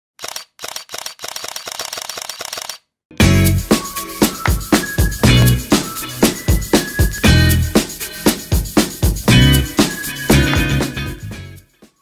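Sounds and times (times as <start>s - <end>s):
camera shutter clicking: 0.2s - 2.8s.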